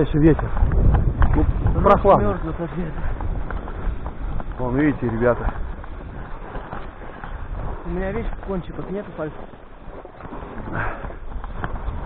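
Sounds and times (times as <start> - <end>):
footsteps crunching in snow: 0.0 - 12.0
wind rumbling on microphone: 0.0 - 12.0.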